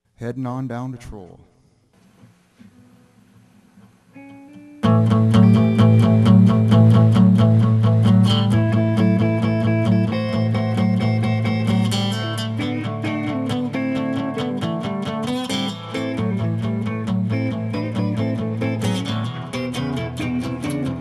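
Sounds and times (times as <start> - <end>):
acoustic guitar: 2.0 - 21.0
electric guitar: 2.1 - 21.0.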